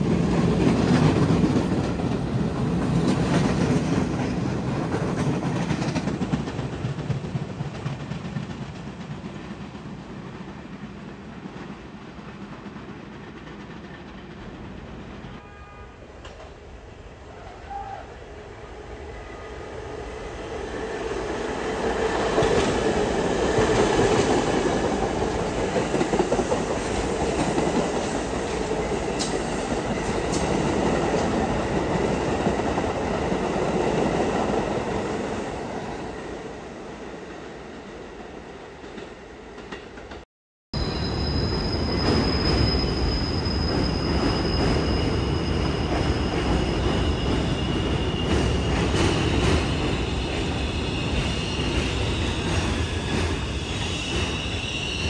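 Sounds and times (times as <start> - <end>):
subway train rumbling past: 0.0 - 40.2, 40.8 - 55.0.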